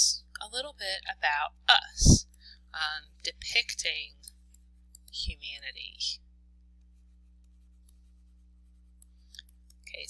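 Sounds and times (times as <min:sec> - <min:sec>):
person speaking: 0:00.0 - 0:04.3, 0:05.0 - 0:06.2
low steady hum: 0:00.0 - 0:10.0
stylus tapping and scratching: 0:06.6 - 0:10.0.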